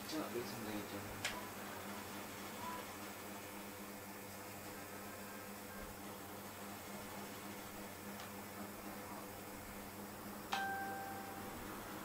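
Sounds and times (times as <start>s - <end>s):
ringing ding: 10.5s - 11.6s.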